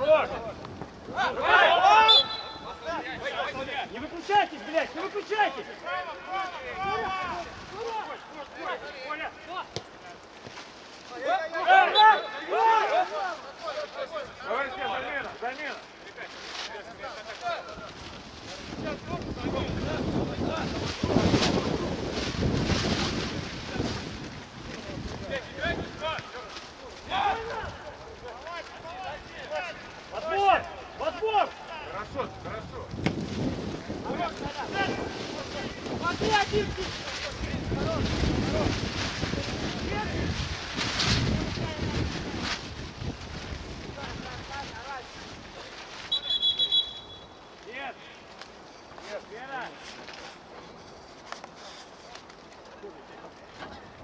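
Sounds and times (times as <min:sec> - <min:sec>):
wind buffeting microphone: 0:00.0 - 0:04.9, 0:17.6 - 0:46.0
players shouting: 0:00.0 - 0:10.2, 0:11.1 - 0:15.3.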